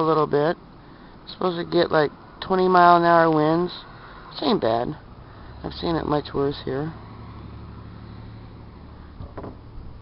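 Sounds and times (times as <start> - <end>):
road and wind noise: 0.0 - 10.0
pickup truck driving past: 4.9 - 10.0.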